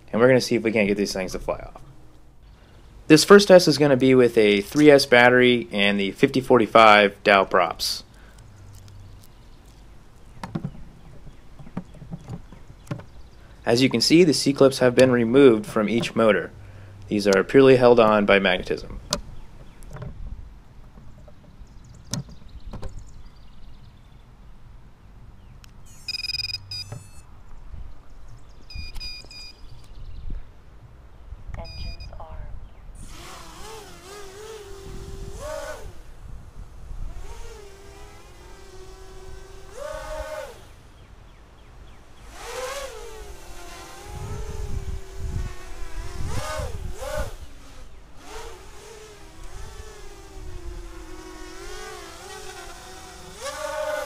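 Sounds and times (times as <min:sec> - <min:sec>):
drone motors whining: 0:25.7 - 0:27.3, 0:33.0 - 0:54.0
drone startup beeps: 0:25.9 - 0:27.3, 0:28.7 - 0:29.6, 0:31.6 - 0:32.2.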